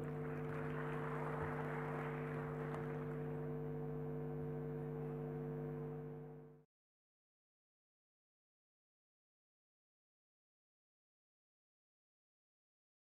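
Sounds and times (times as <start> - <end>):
electrical hum: 0.0 - 6.6.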